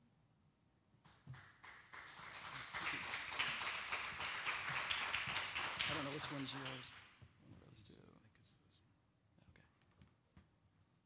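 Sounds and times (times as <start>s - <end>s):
audience applause: 1.3s - 7.0s.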